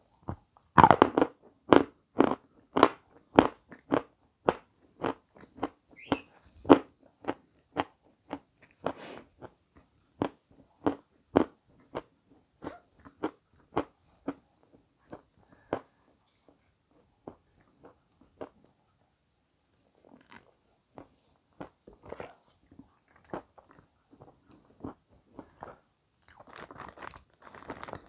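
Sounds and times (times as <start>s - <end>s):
crunchy food being chewed: 0.2s - 18.9s, 19.7s - 28.0s.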